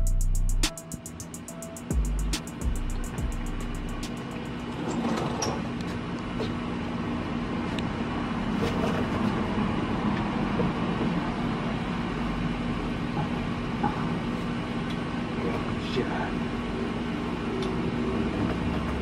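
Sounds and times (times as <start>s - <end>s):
low mechanical hum: 0.0s - 19.0s
noisy background: 0.0s - 19.0s.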